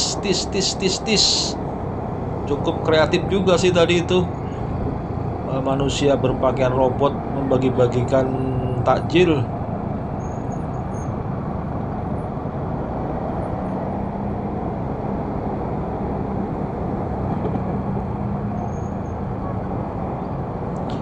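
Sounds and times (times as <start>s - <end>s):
low engine hum: 0.0s - 21.0s
rumble of traffic: 0.0s - 21.0s.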